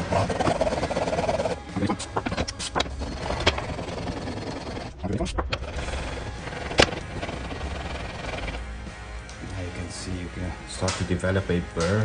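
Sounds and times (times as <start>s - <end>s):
chisel scraping on whetstone: 0.0s - 8.6s
background music: 0.0s - 12.0s.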